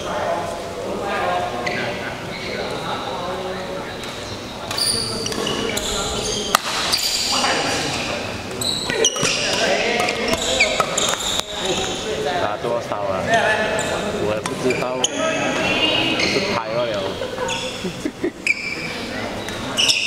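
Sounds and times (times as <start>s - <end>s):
shoes squeaking on court floor: 3.8s - 12.2s, 13.2s - 20.0s
rackets striking shuttlecock: 6.4s - 7.3s, 8.9s - 11.9s.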